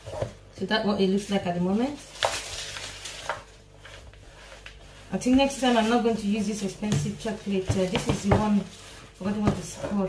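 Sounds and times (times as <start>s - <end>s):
spatula scraping plastic bowl: 3.8s - 10.0s.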